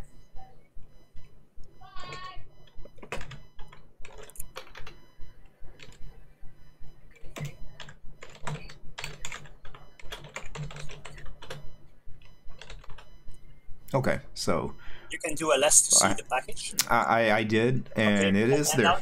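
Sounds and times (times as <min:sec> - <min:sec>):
keyboard typing clicks: 0:02.0 - 0:05.0, 0:07.1 - 0:13.2.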